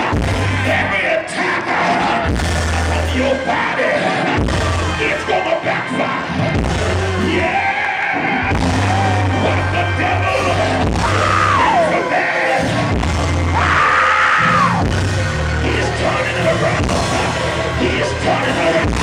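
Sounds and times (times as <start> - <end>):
live band music with bass: 2.1 - 3.5, 8.4 - 11.9, 12.6 - 13.8, 14.4 - 19.0.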